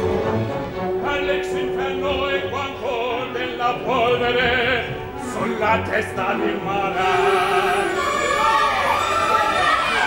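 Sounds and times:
operatic singing voices: 1.0 - 10.0.

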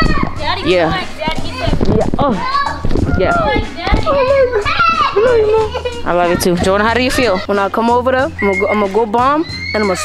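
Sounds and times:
children shouting while playing: 0.0 - 0.4, 2.4 - 6.0, 8.4 - 10.0.

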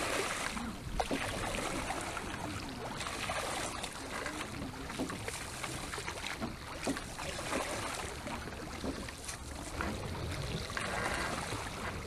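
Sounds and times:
water splashing around oars: 0.0 - 12.0.

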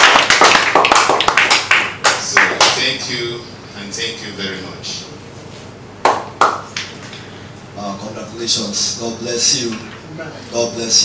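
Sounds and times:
sharp hand claps: 0.0 - 2.8, 6.0 - 7.0.

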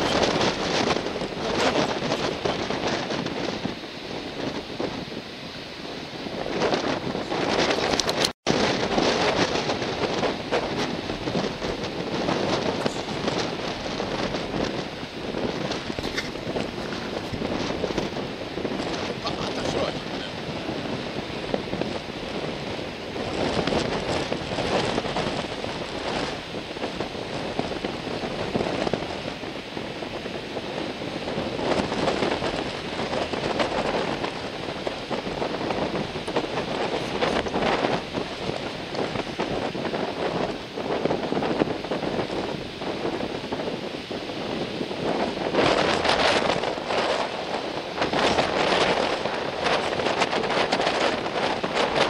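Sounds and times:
surf breaking: 0.0 - 52.0
wind buffeting microphone: 0.0 - 52.0.

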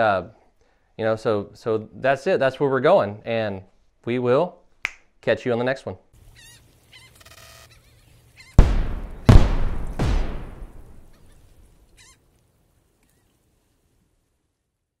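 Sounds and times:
deep booming hits: 8.6 - 11.2.

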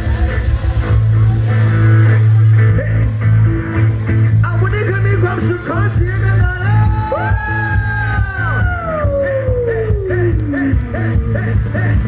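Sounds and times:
live band playing dance music: 0.0 - 12.0
steady bass beat: 0.0 - 12.0.

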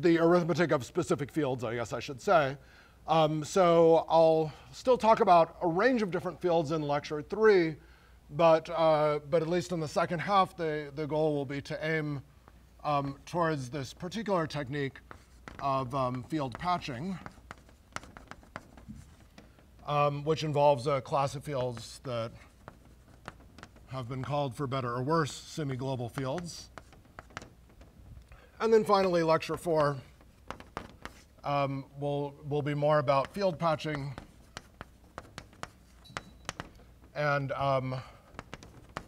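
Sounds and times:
man speaking: 0.0 - 12.2, 12.8 - 15.0, 15.6 - 17.3, 19.8 - 22.4, 23.9 - 26.8, 28.6 - 30.1, 31.4 - 34.3, 37.2 - 38.2
chalk on blackboard: 13.0 - 28.0, 28.7 - 31.8, 32.6 - 39.0.

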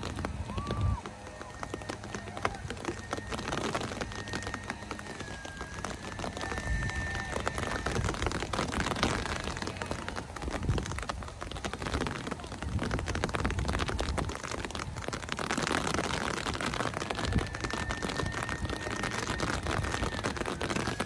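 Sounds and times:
rain pattering: 0.0 - 21.0
wind rumble on microphone: 0.0 - 21.0.

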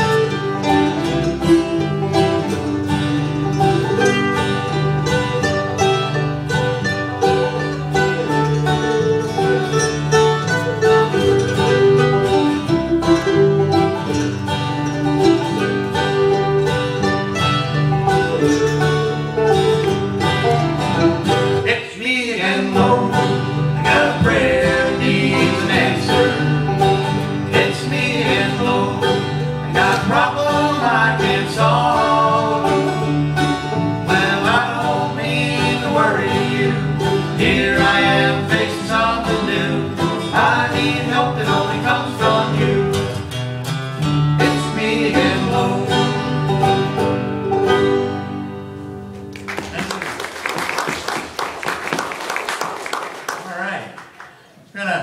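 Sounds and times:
electric bass guitar: 0.0 - 21.7, 22.8 - 49.8
banjo: 0.0 - 50.0
mandolin: 0.0 - 52.0
acoustic guitar: 0.0 - 55.0.

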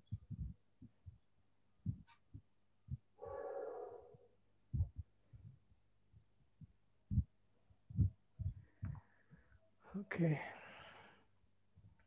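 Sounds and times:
faint low thumps: 0.0 - 9.6.

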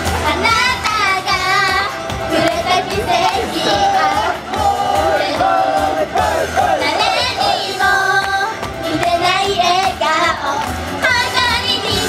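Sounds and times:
women singing pop song together: 0.2 - 12.0.

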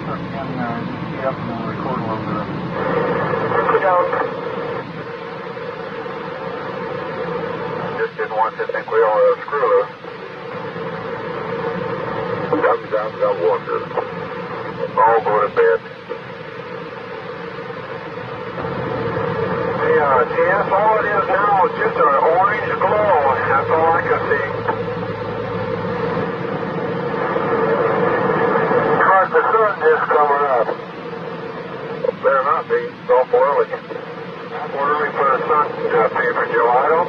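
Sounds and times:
constant tone: 0.0 - 37.0
faint steady hum: 0.0 - 37.0
radio channel hiss: 0.0 - 37.0.

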